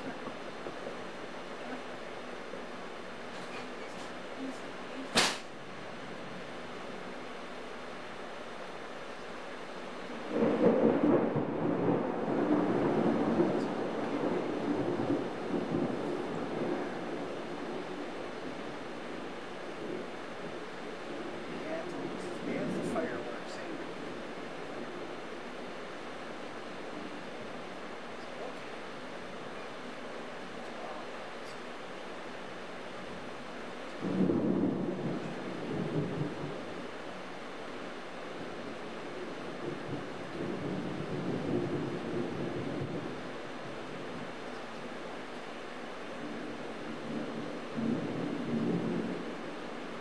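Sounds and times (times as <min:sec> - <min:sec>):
steady rain: 0:00.0 - 0:50.0
thunder rumbling: 0:09.8 - 0:50.0.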